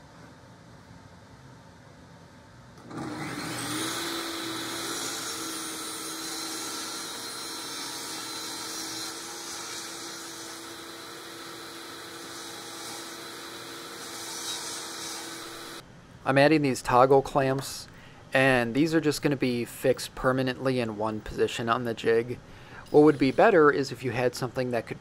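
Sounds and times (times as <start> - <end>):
table saw running: 2.8 - 15.8.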